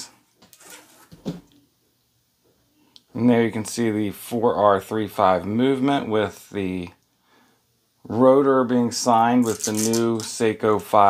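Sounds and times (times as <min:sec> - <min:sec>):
strap rustling: 0:00.4 - 0:01.5, 0:09.4 - 0:10.4.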